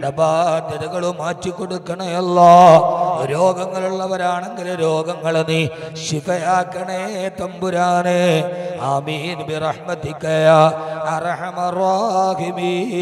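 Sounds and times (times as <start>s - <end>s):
man chanting a prayer: 0.0s - 13.0s.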